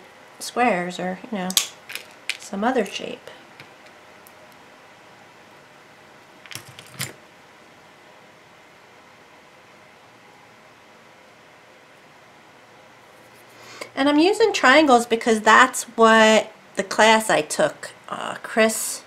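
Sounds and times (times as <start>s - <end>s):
faint room hiss: 0.0s - 19.0s.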